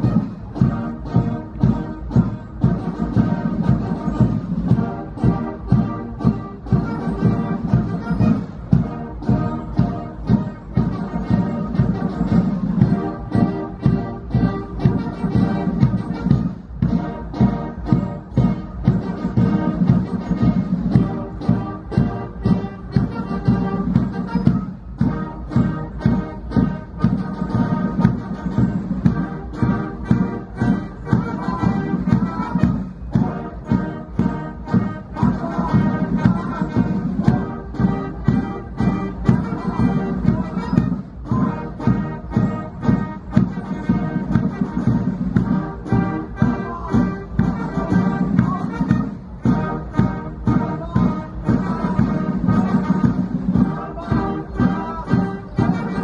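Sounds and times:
band playing a march: 0.0 - 56.0
steady drum beat: 0.0 - 56.0.

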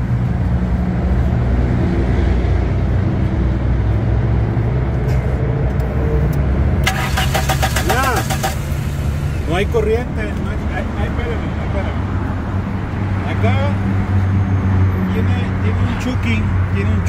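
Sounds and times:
car engine cranking on starter: 6.8 - 9.3.

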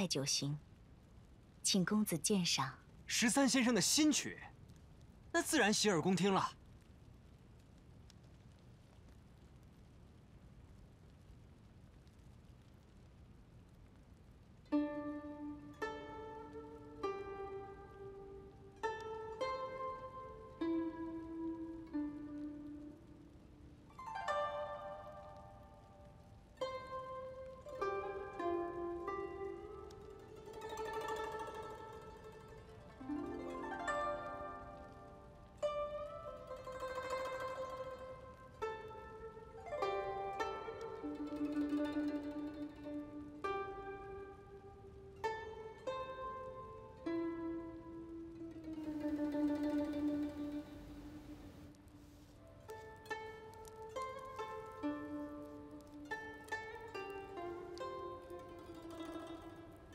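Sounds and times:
plucked lute melody: 14.7 - 59.9.

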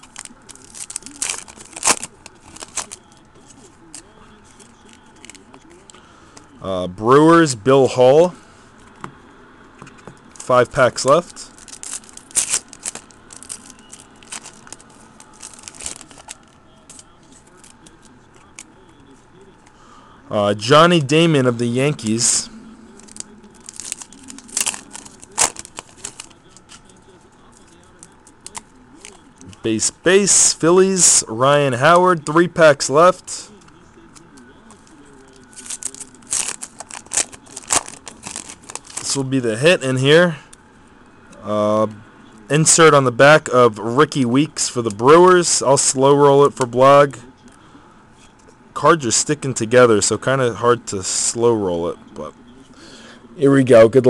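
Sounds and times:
foil wrapper tearing and crinkling: 0.0 - 3.0, 10.4 - 17.8, 23.0 - 26.4, 35.1 - 39.3.

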